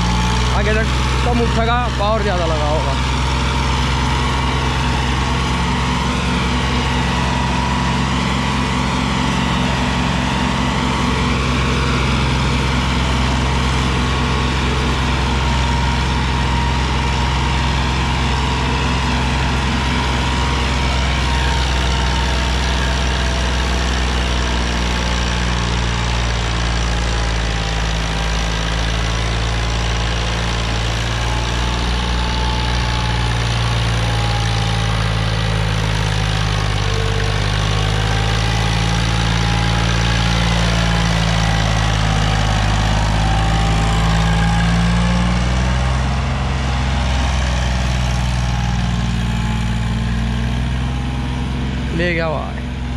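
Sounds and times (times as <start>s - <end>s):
tractor diesel engine under load: 0.0s - 52.9s.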